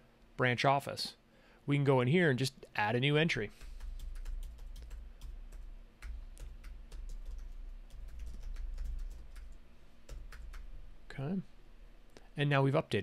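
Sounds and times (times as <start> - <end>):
typing on computer keyboard: 3.5 - 10.8.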